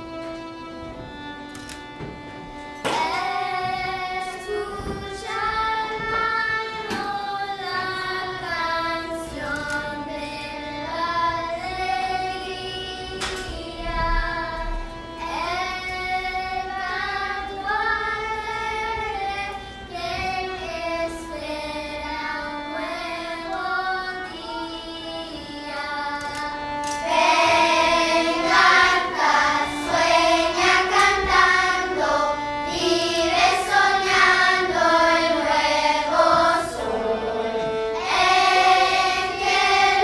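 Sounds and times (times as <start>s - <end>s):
string orchestra playing slow melody: 0.0s - 40.0s.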